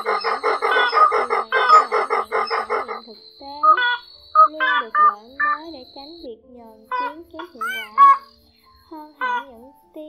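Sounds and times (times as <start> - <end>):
waterhen calls: 0.0 - 5.6, 6.9 - 8.3, 9.2 - 9.5.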